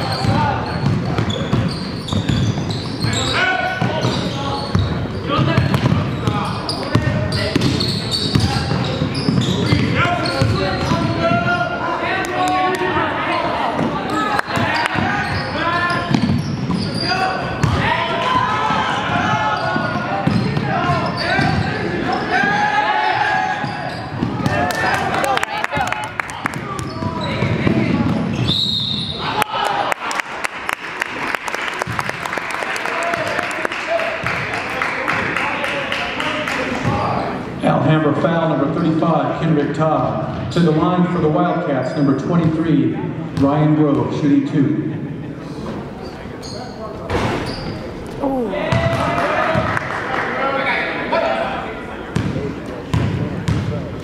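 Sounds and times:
basketball bouncing on hardwood floor: 5.5 - 6.0, 52.2 - 53.7
referee's whistle: 28.3 - 29.3
voices talking and calling out: 44.3 - 54.0.

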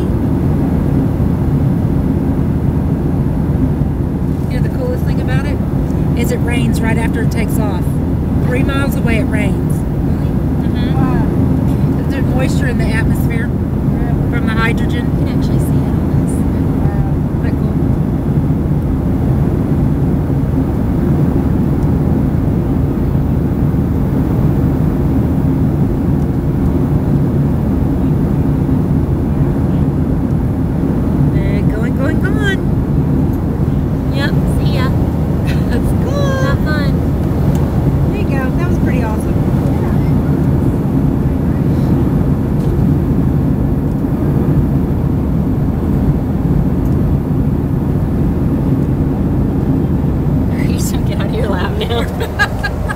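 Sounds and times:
airliner cabin engine and airflow drone: 0.0 - 52.9
faint voices: 4.4 - 17.9, 38.0 - 42.6, 50.5 - 52.9.

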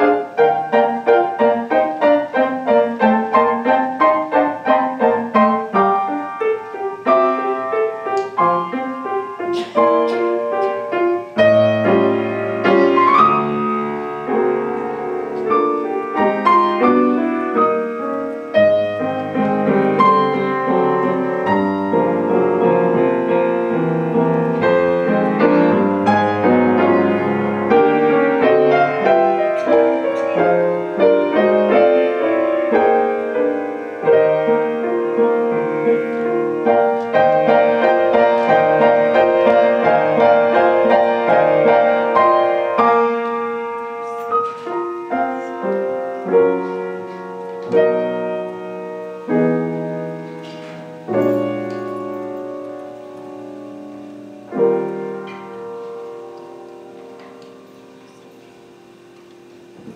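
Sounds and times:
solo grand piano: 0.0 - 59.9.

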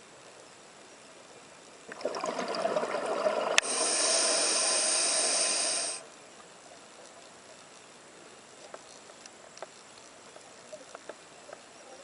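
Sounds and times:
bubbling exhalation underwater: 1.9 - 4.8
hiss of inhalation through valve: 3.5 - 6.0.

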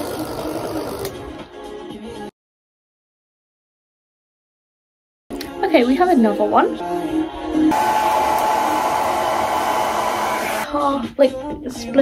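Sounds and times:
hair dryer running: 7.7 - 10.7.

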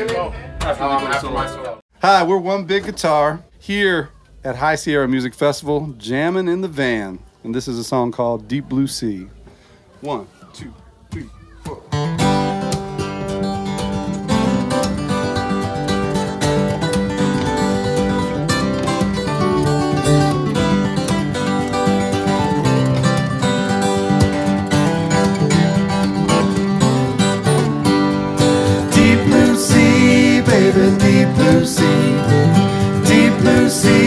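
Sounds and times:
acoustic guitars strumming and picking: 0.0 - 1.8, 11.1 - 34.0
person counting in: 10.0 - 12.0.

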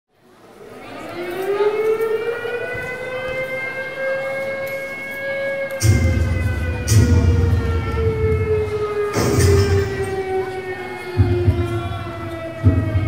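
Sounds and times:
air raid siren wail: 1.0 - 13.0
heavy bass beat: 5.8 - 10.3, 11.1 - 13.0.

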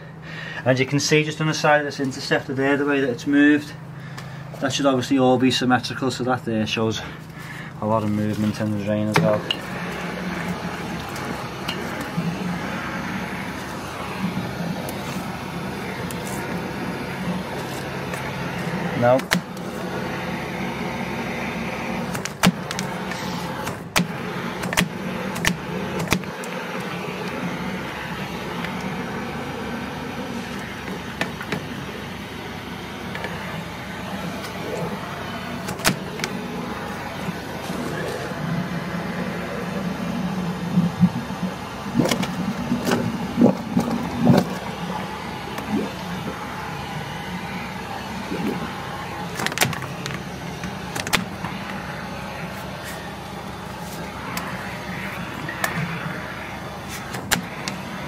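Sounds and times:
drain jetter running: 0.0 - 58.0
hose knocking and clicking: 50.9 - 51.4.

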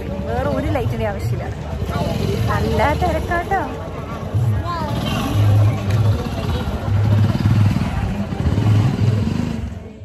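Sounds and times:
motorbike engine running: 0.0 - 10.0
voices: 0.0 - 10.0.

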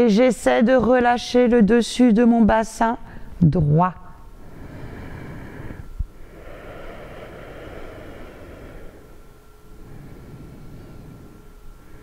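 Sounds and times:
woman breathing deeply: 4.3 - 12.0.

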